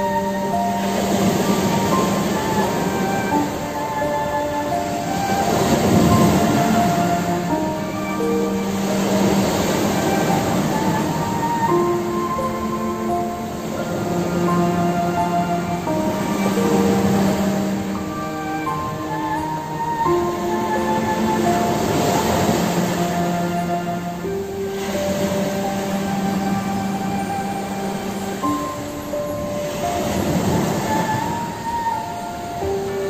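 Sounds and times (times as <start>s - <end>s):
sea waves on rocky shore: 0.0s - 33.0s
soft background music: 0.0s - 33.0s.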